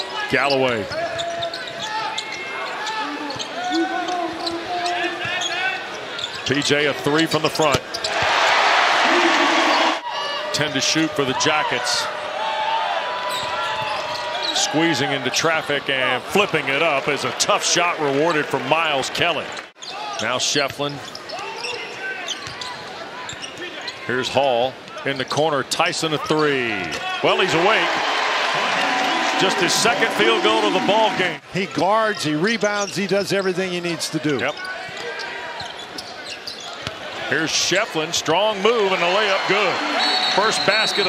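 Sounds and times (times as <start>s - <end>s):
players' voices: 0.0s - 12.3s, 13.5s - 41.0s
arena crowd: 0.0s - 41.0s.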